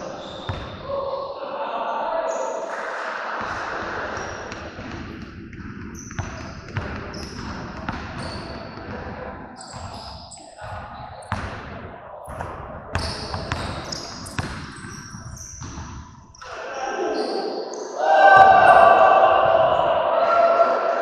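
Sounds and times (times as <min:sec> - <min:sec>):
voices: 0:00.0 - 0:04.4, 0:16.4 - 0:21.0.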